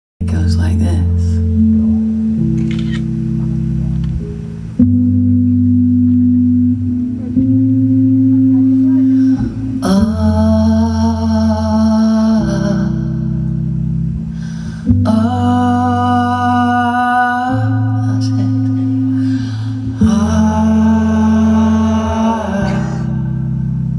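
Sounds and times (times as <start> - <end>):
low keyboard chords: 0.2 - 23.9.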